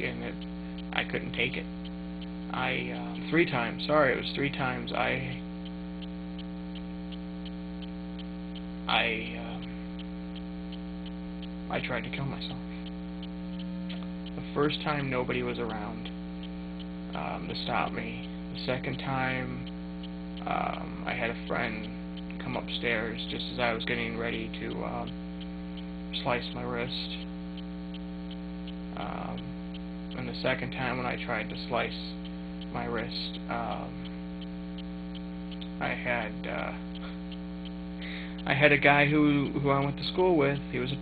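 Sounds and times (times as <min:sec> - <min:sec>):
electrical mains hum: 0:00.0 - 0:41.0
faint repeating tick: 0:00.0 - 0:41.0.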